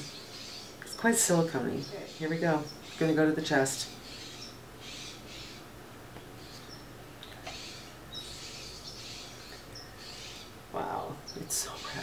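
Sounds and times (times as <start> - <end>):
faint bird chirps: 6.4 - 12.0.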